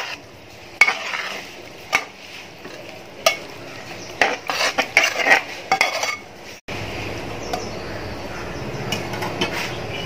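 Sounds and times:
metal spoon scraping pot: 0.0 - 6.6.

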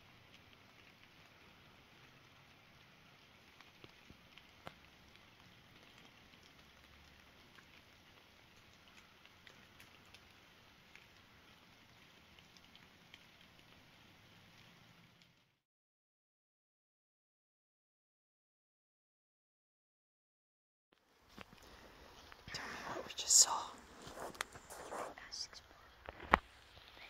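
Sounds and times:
faint steady hiss: 0.0 - 15.6, 21.0 - 27.0
person whispering: 22.5 - 26.1.

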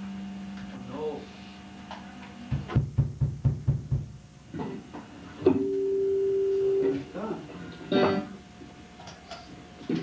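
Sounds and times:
low thumps: 2.5 - 4.2
plucked guitar note: 7.9 - 8.4.

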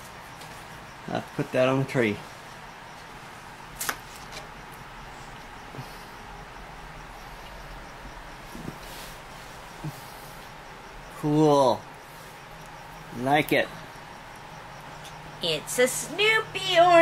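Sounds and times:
room hiss: 0.0 - 17.0.

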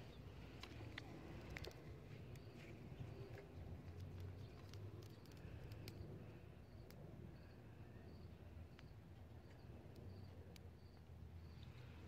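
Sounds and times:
small ticks: 0.4 - 7.0, 8.7 - 12.0.

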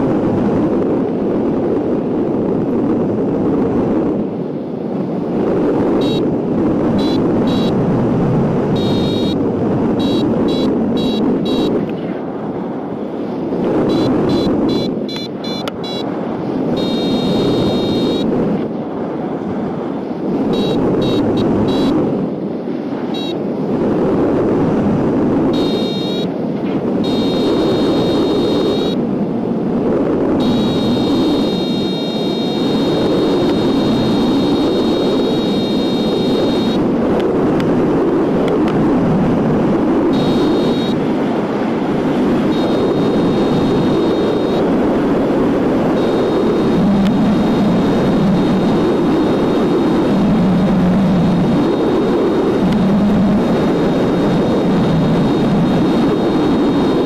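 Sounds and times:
airflow rushing over microphone: 0.0 - 57.0
variometer beeping: 5.9 - 8.0, 8.6 - 11.9, 13.7 - 18.4, 20.3 - 22.1, 23.0 - 23.5, 25.4 - 26.4, 27.0 - 29.0, 30.3 - 36.9, 39.9 - 41.2, 42.3 - 57.0.

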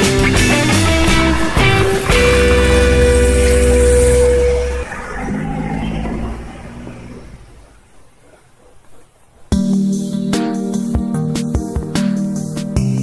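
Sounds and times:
rock music chord with heavy bass: 0.0 - 5.0.

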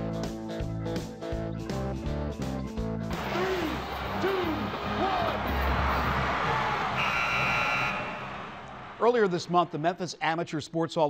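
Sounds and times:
show theme music: 0.0 - 10.1
game clock buzzer: 7.0 - 8.6.

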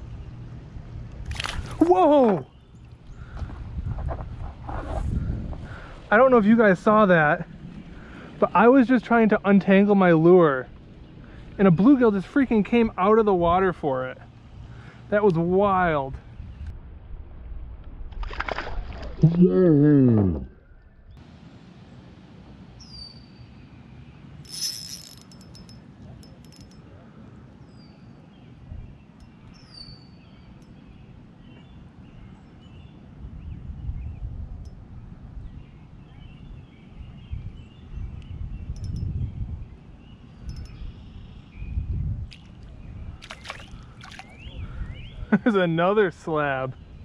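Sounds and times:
soft water sounds: 1.1 - 3.3, 18.1 - 19.4, 42.3 - 44.6.

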